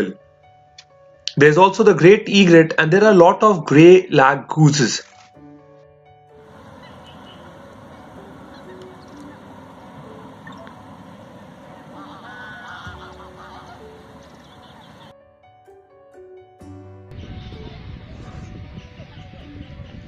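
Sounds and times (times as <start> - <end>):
faint background music: 0.0 - 20.0
geese honking: 6.4 - 15.1
waterbirds calling: 6.4 - 15.1, 17.2 - 20.0.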